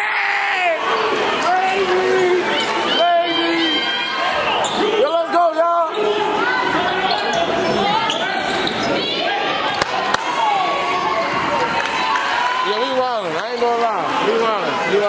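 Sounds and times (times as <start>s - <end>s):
echoing indistinct voices: 0.0s - 15.0s.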